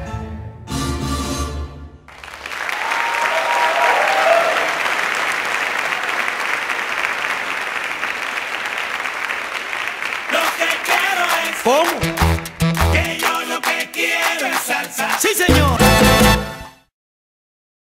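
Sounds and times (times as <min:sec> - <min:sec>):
audience applauding: 0:02.1 - 0:16.2
salsa music: 0:10.3 - 0:16.9.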